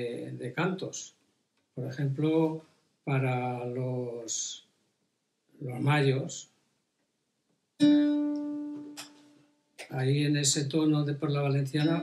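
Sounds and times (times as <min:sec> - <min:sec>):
acoustic guitar note plucked: 0:07.8 - 0:09.9.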